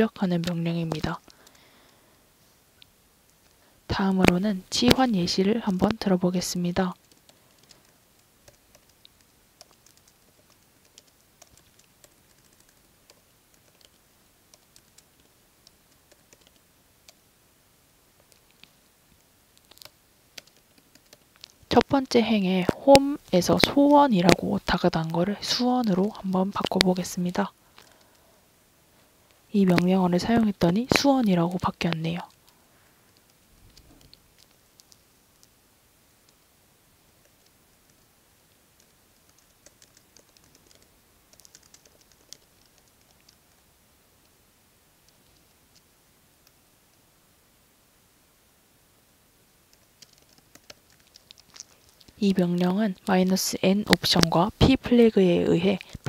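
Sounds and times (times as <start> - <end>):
faint keyboard typing: 0.0 - 2.0, 2.8 - 17.3, 18.1 - 28.3, 29.5 - 35.6, 37.1 - 44.4, 45.0 - 47.0, 49.6 - 56.0
typing on computer keyboard: 7.0 - 17.2, 19.6 - 21.5, 38.8 - 43.6, 49.7 - 52.8.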